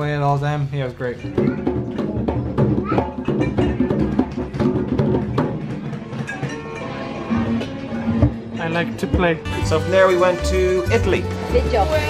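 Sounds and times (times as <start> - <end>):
hand drums playing: 1.1 - 12.0.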